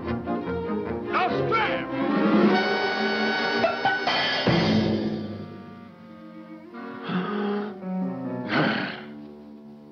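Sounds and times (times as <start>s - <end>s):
soft orchestral music: 0.0s - 9.9s.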